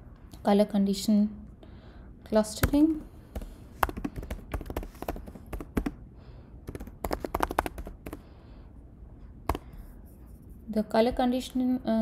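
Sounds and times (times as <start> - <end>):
typing on computer keyboard: 3.4 - 6.0, 6.7 - 8.2.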